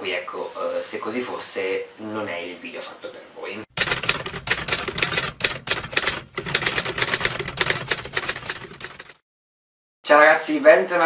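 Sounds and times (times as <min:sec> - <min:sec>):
typewriter keystroke clacks: 0:03.7 - 0:09.2.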